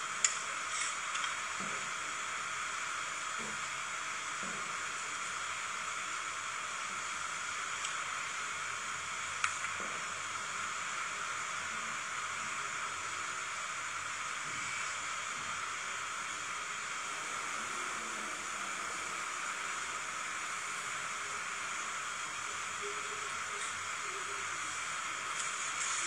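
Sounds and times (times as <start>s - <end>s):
machine hissing: 14.4s - 26.0s.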